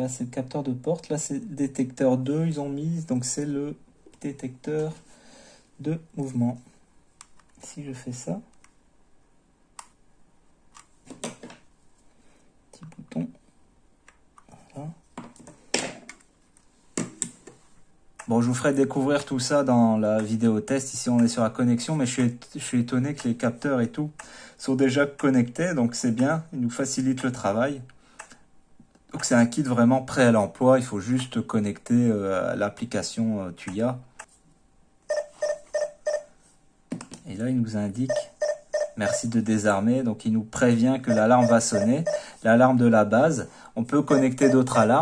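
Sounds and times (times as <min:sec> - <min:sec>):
alarm hub beeping: 0:35.1 - 0:36.3, 0:38.0 - 0:39.4, 0:41.0 - 0:42.4, 0:44.1 - 0:45.0.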